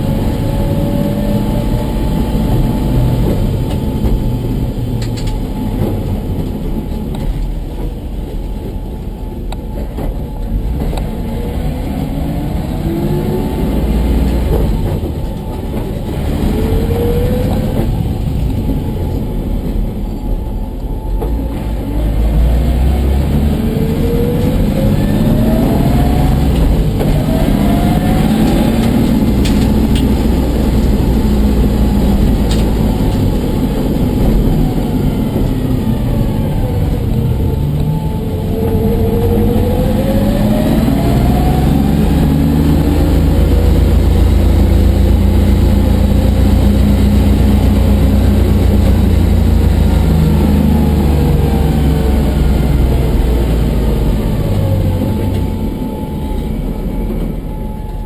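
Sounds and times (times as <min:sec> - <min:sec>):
car engine revving inside cabin: 0:00.0 - 0:57.7.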